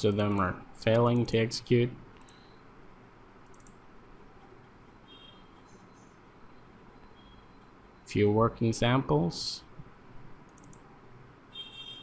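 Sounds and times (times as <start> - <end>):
faint mouse clicks: 2.2 - 2.4, 3.4 - 3.8, 10.5 - 10.8.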